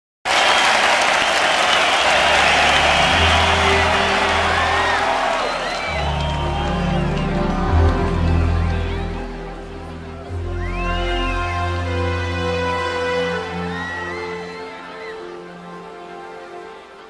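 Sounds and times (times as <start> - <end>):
crowd applauding and cheering: 0.2 - 17.0.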